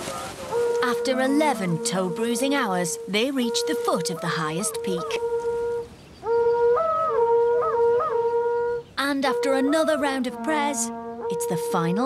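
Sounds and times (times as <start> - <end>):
conch-shell trumpet blasts: 0.0 - 12.0.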